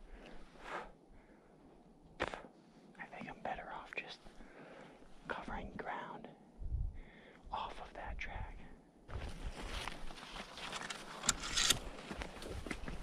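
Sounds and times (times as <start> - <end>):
man whispering: 2.2 - 4.4, 5.2 - 6.6, 7.4 - 8.8.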